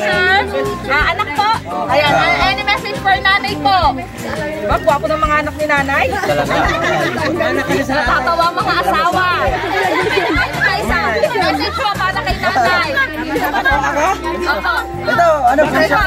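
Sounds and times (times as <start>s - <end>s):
background music: 0.0s - 16.0s
people chattering: 0.0s - 16.0s.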